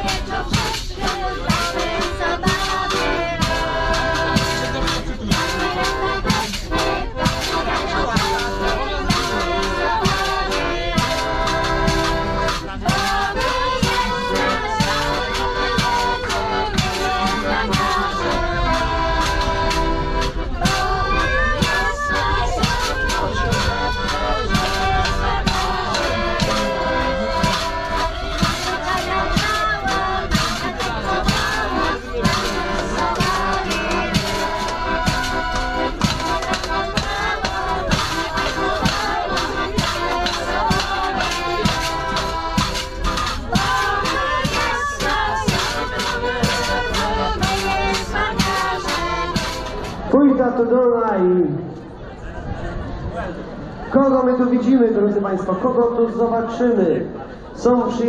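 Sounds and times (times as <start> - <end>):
people singing along: 0.0 - 50.1
steady beat: 0.0 - 50.1
piano accordion playing folk tune: 0.0 - 50.2.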